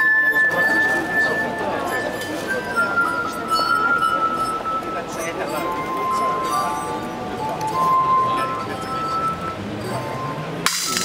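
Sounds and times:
glass harp melody: 0.0s - 11.0s.

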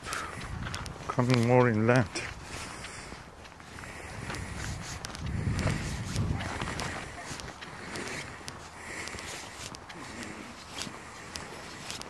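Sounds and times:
wind buffeting microphone: 0.0s - 9.9s
footsteps on sand: 0.0s - 12.0s.

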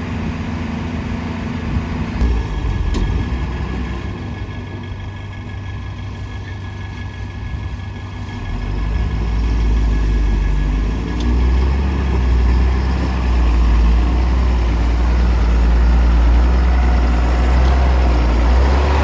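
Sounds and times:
diesel engines idling: 0.0s - 19.0s
truck engine rumble pulling away: 0.0s - 19.0s.

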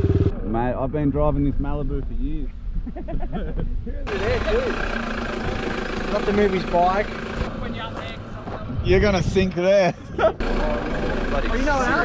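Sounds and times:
pickup engine rumbling: 0.0s - 12.0s
wind: 0.0s - 12.0s
voices: 0.5s - 12.0s.

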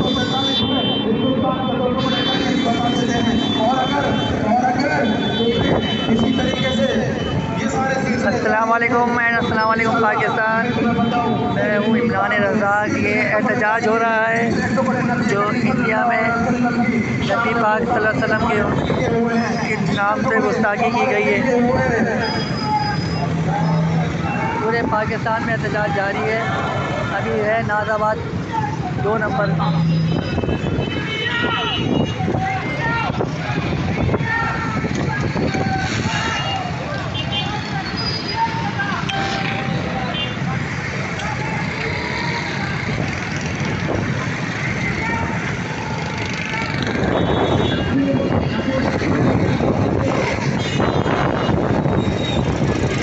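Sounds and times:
crowd voices: 0.0s - 53.0s
motorcycle and car engines: 1.0s - 31.2s, 31.9s - 53.0s
motorcycle engines running: 28.2s - 53.0s
wind buffeting microphone: 46.8s - 53.0s.

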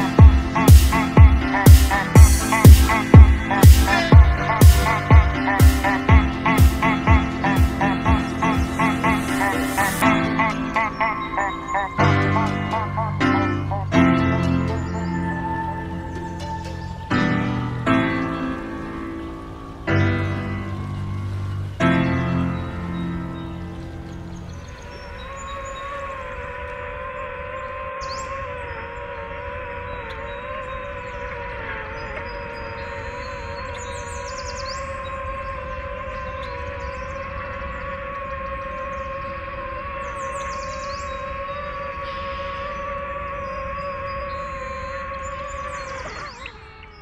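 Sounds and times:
birds chirping: 0.0s - 47.0s.

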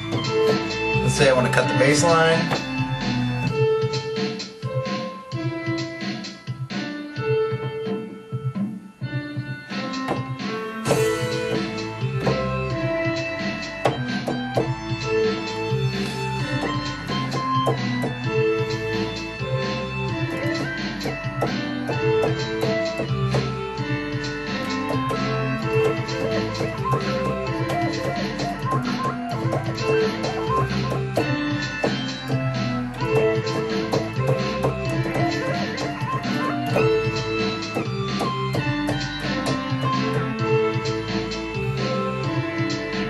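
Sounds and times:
electronic keyboard melody: 0.0s - 43.0s.

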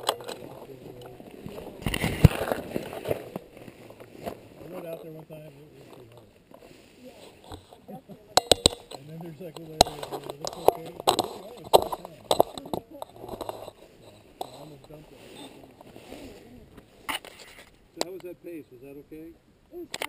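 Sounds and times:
group of people talking: 0.0s - 20.0s
sharp clicks and knocks: 8.4s - 15.0s.

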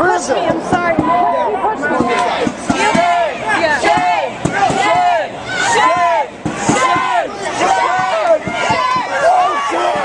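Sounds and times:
crowd shouting: 0.0s - 10.0s.

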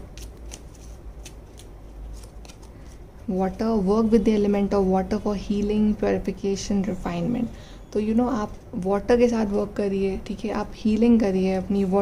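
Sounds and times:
cards rustling and snapping: 0.0s - 3.0s.

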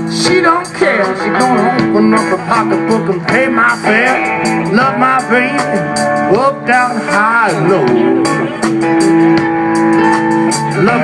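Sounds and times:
bass guitar: 0.0s - 11.0s
drums with cymbals: 0.0s - 11.0s
electric guitar: 0.0s - 11.0s.

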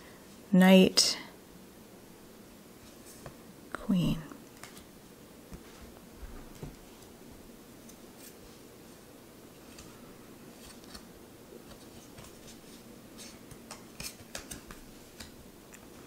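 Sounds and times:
cards rustling and clicking: 9.6s - 10.0s, 10.6s - 16.0s.

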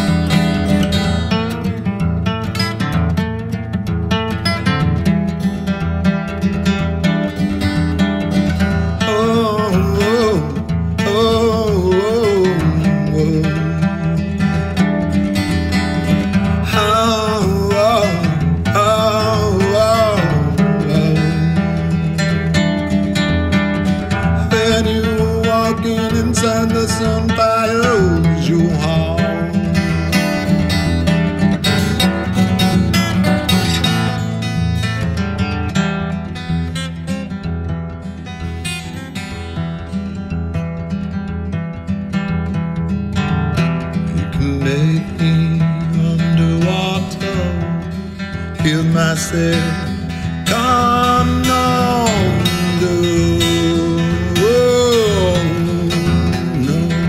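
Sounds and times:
acoustic guitar strumming: 0.0s - 57.0s
man singing long notes: 9.0s - 14.2s, 16.6s - 21.8s, 24.4s - 30.2s, 44.3s - 47.8s, 48.6s - 57.0s.

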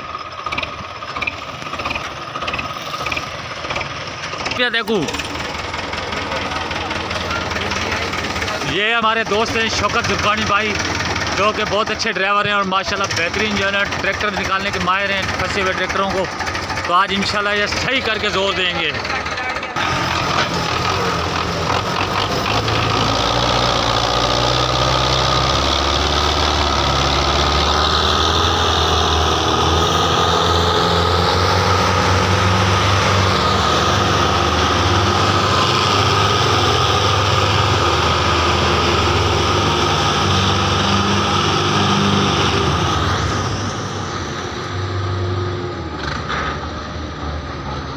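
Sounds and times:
tractor diesel engines under load: 0.0s - 47.9s.

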